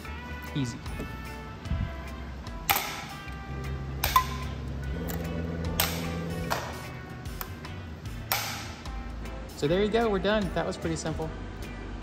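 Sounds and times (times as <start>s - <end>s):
background music: 0.0s - 12.0s
rivet gun snaps: 2.7s - 3.1s, 8.3s - 8.8s.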